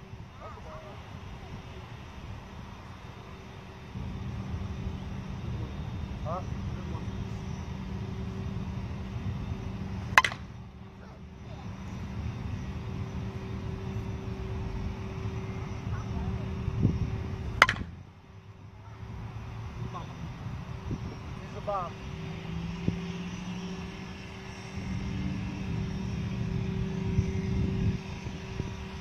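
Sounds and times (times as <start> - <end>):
low background rumble: 0.0 - 29.0
bat hitting softball: 10.1 - 10.6, 17.5 - 18.0.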